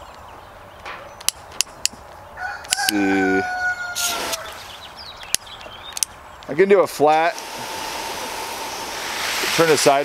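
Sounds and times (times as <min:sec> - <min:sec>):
rooster crowing: 0:02.4 - 0:04.6
garden hose spraying water: 0:04.0 - 0:04.9, 0:06.9 - 0:10.0
sharp click: 0:05.3 - 0:06.5.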